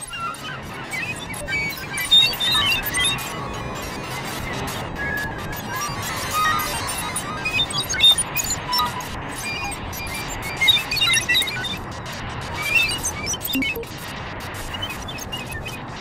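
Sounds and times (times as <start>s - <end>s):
noisy experimental electronic music: 13.5s - 13.9s
high blips and crackling clicks: 13.5s - 14.0s.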